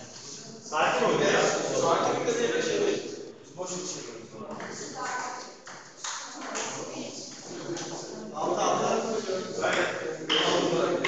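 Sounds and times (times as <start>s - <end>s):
voices in background: 0.0s - 11.0s.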